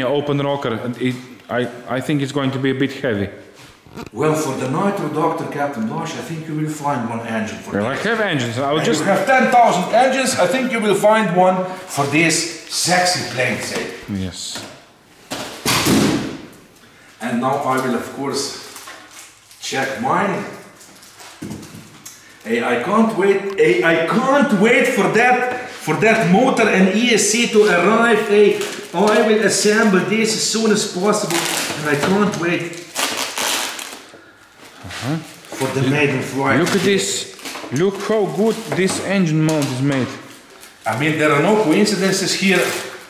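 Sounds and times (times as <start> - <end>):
plastic wrap crinkling: 3.7 - 4.2, 17.5 - 24.1, 26.8 - 43.0
packaged parts thumping and rustling: 20.9 - 22.0
short voice sound: 34.8 - 35.3.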